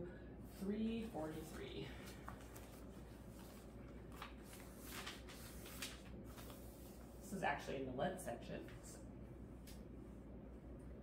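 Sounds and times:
paper pages rustling: 0:01.0 - 0:07.1.

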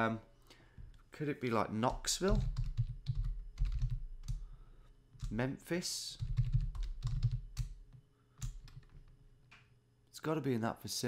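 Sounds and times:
typing on computer keyboard: 0:02.3 - 0:04.4, 0:06.2 - 0:09.1.

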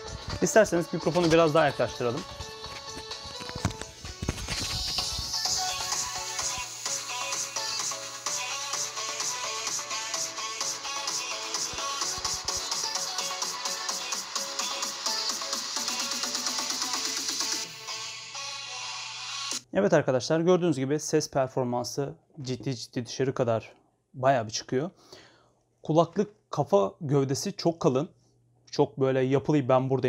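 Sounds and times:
music leaking from headphones: 0:00.0 - 0:19.6.

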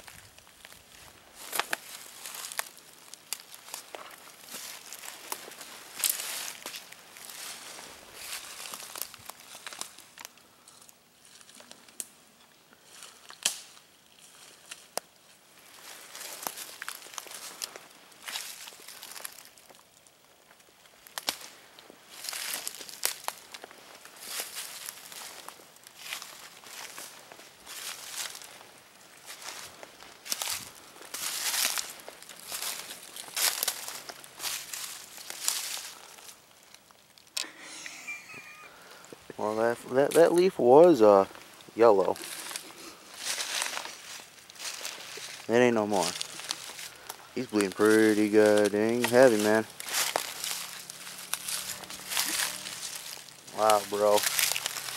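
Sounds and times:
footsteps crunching through leaves: 0:00.0 - 0:12.0, 0:12.8 - 0:54.9.

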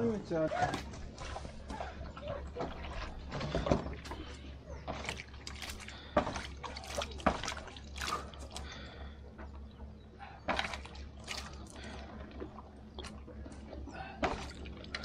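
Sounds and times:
water splashing from hands: 0:02.6 - 0:09.0, 0:10.5 - 0:15.0.

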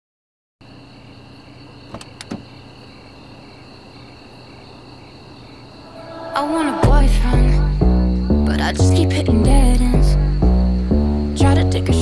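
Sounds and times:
high insect-like chirring: 0:00.7 - 0:12.0.

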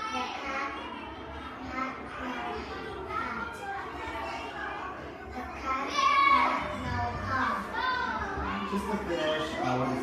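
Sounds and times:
children's voices: 0:00.0 - 0:10.0.

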